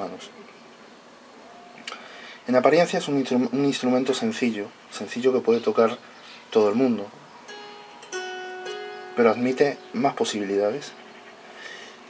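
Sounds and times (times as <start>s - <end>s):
plucked zither notes: 7.5s - 12.0s.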